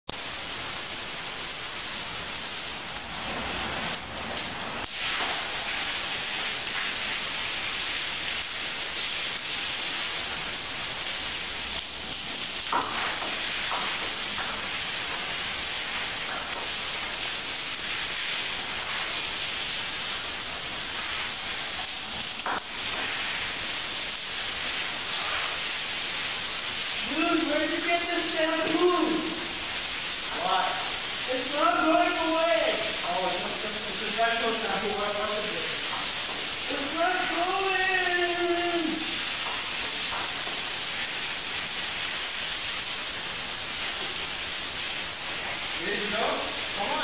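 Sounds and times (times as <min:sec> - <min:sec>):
shower water spraying: 0:00.1 - 0:47.0.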